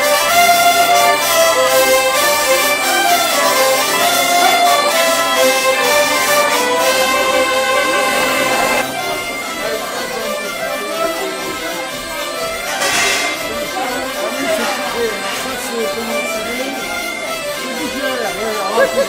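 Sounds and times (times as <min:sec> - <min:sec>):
button accordions: 0:00.0 - 0:19.0
clarinet: 0:00.0 - 0:19.0
folk dance music: 0:00.0 - 0:19.0.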